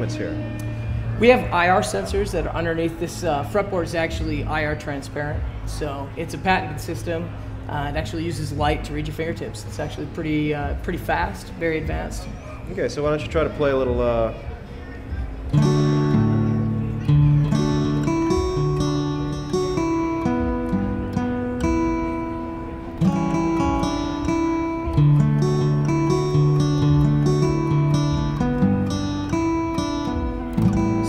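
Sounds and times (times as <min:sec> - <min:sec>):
acoustic guitar strummed chords: 0:00.0 - 0:04.7, 0:15.0 - 0:31.0.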